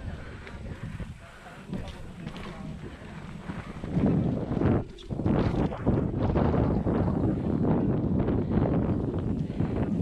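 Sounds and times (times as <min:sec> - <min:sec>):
bike tyres rumbling on dirt: 0:00.0 - 0:10.0
wind buffeting microphone: 0:00.0 - 0:10.0.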